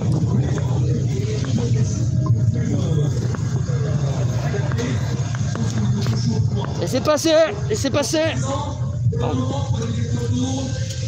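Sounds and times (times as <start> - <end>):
motorcycle engines idling: 0.0 - 11.0
voices: 0.0 - 11.0.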